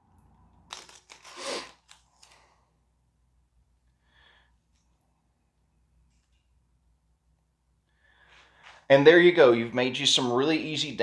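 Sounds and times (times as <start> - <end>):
masking tape crinkling: 0.6 - 2.6.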